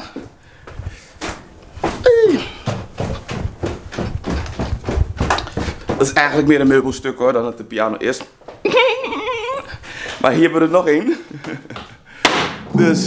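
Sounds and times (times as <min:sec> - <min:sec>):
footsteps on stairs: 0:00.0 - 0:12.9.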